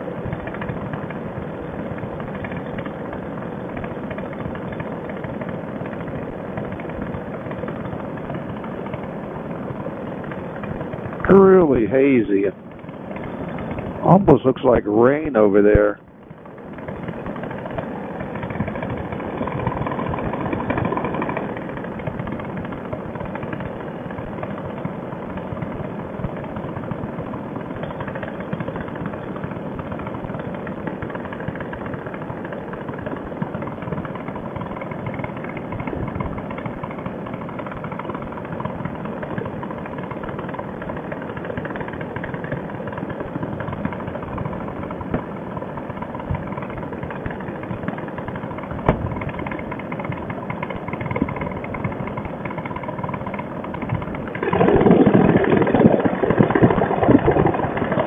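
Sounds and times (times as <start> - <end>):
paramotor engine and propeller: 0.0 - 58.0
wind on microphone: 48.8 - 49.6, 53.8 - 58.0.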